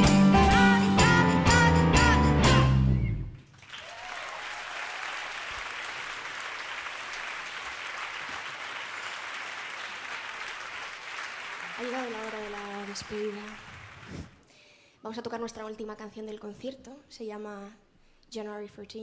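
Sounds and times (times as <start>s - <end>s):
band music: 0.0s - 3.2s
audience applauding: 3.5s - 14.4s.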